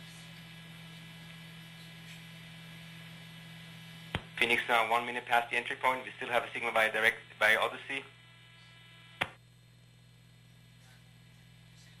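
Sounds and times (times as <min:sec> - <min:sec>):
faint electrical hum: 0:00.0 - 0:12.0
sharp click: 0:09.2 - 0:09.4.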